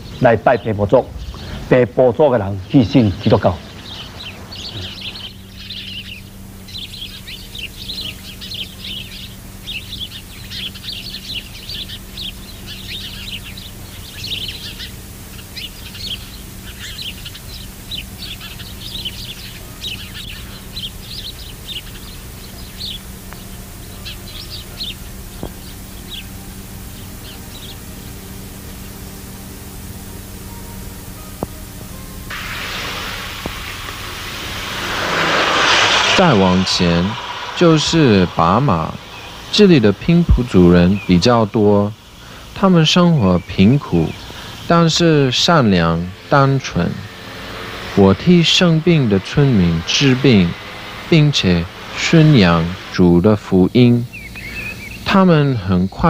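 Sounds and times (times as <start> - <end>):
small birds chirping: 0.0 - 56.0
steady low hum: 0.0 - 56.0
road vehicle approaching: 0.9 - 15.3, 16.0 - 55.3.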